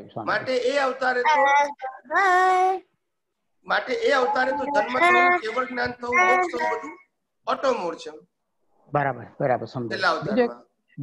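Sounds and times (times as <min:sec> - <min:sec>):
high-pitched voice singing: 0:01.2 - 0:02.9, 0:04.0 - 0:07.1.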